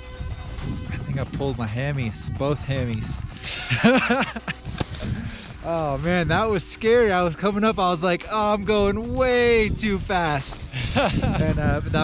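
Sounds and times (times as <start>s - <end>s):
wind noise on microphone: 0.0s - 12.0s
man laughing: 3.4s - 5.4s, 10.7s - 12.0s.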